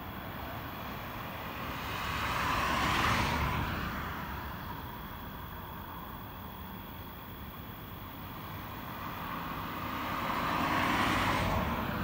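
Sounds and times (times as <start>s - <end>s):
steady background noise: 0.0s - 12.0s
vehicle passing by: 9.2s - 12.0s.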